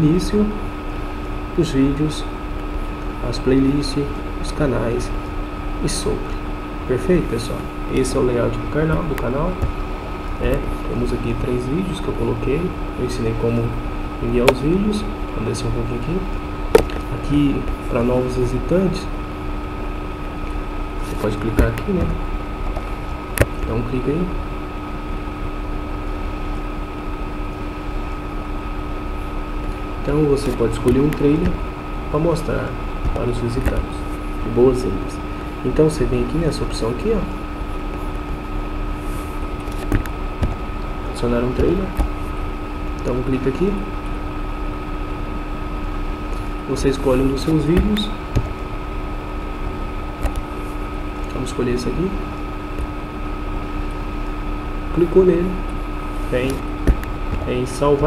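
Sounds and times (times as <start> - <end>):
steady hiss: 0.0 - 25.3, 26.0 - 58.0
constant low hum: 0.0 - 58.0
high steady whine: 0.0 - 58.0.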